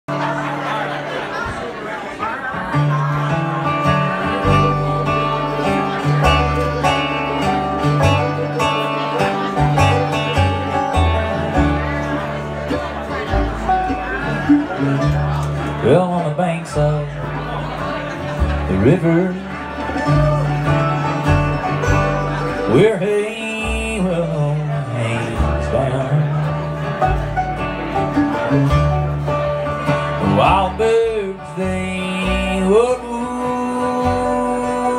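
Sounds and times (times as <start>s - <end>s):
mandolin: 0.0s - 34.9s
banjo rolls: 0.1s - 34.9s
strummed acoustic guitar: 0.1s - 34.9s
upright bass notes: 2.6s - 34.9s.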